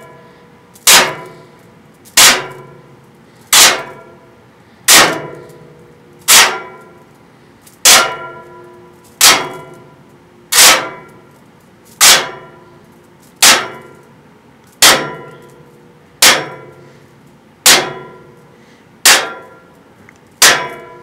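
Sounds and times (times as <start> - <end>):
metallic clang ringing: 7.8 - 9.9, 14.8 - 16.8, 20.4 - 21.0.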